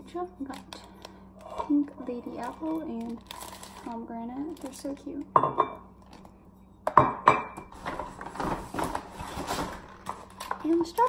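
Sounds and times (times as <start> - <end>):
groceries knocking and clattering: 6.9 - 11.0.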